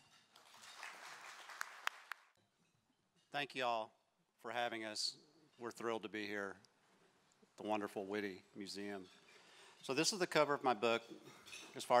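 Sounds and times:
faint audience applause: 0.4s - 2.3s.

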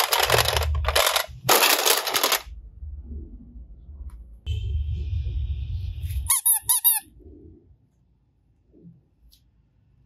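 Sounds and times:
rubber duck toy squeaking: 6.3s - 7.1s.

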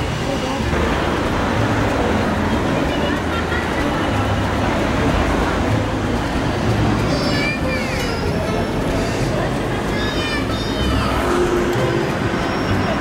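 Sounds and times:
indistinct chatter: 0.0s - 13.0s
traffic running past: 0.0s - 13.0s.

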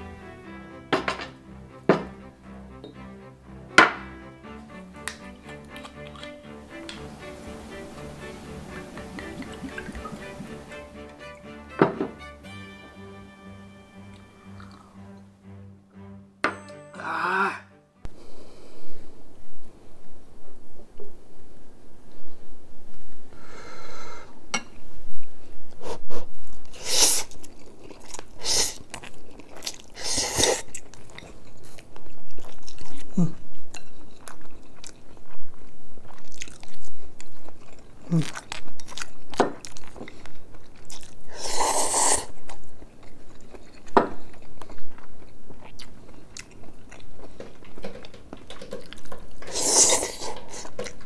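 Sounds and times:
background music: 0.0s - 18.3s
chopsticks clicking against bowl: 5.0s - 7.0s
glass knocking on wooden table: 11.8s - 12.2s.

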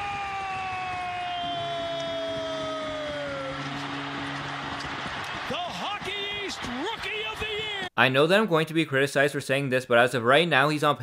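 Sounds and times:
goal horn blast: 1.5s - 7.4s.

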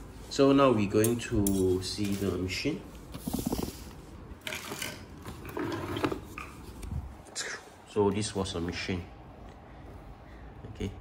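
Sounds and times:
handling rustles: 1.0s - 7.3s.

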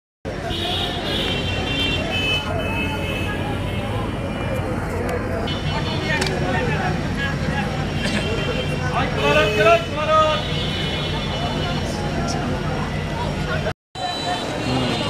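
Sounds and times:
many people talking: 0.3s - 15.0s.

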